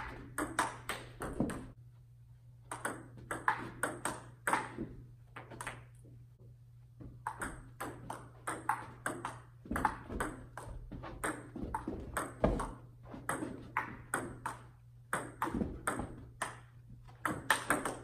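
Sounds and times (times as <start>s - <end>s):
table-tennis ball clicking: 0.0s - 1.6s, 2.7s - 4.8s, 7.2s - 11.5s, 12.2s - 18.0s.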